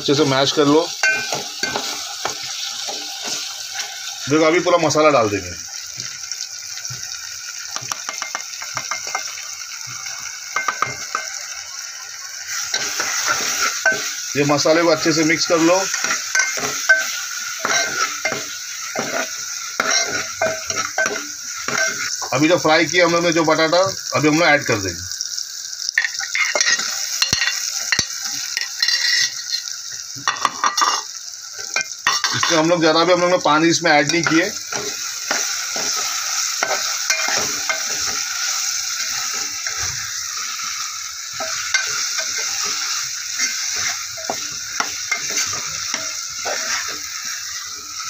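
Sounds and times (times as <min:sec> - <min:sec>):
masala sizzling in hot oil: 0:00.0 - 0:48.0
ladle clinking against pot: 0:01.0 - 0:02.4
steel spoon clinking: 0:01.0 - 0:02.5, 0:07.8 - 0:09.4, 0:10.5 - 0:11.5, 0:12.7 - 0:14.2, 0:15.9 - 0:22.1, 0:26.0 - 0:29.7, 0:34.1 - 0:47.6.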